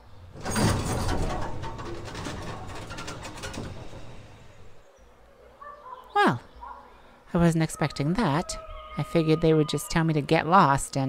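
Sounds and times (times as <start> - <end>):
large gate creaking and rattling: 0.0 - 5.3.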